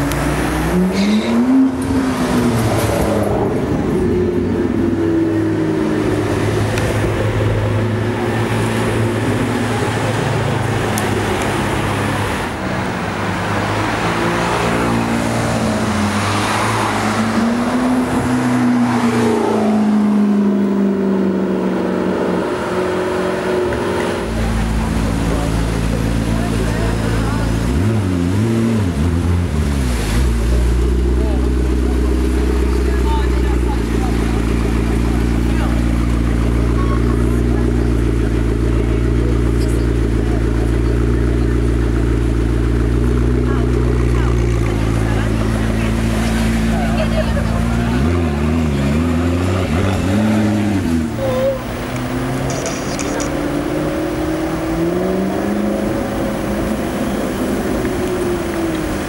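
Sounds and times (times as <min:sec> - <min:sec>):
people's voices: 0:00.0 - 0:21.6, 0:23.4 - 0:59.0
sports car accelerating past: 0:13.2 - 0:26.3.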